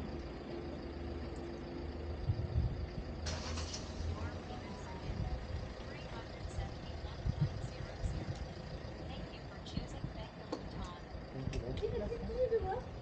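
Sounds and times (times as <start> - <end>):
low uneven rumble: 0.0 - 13.0.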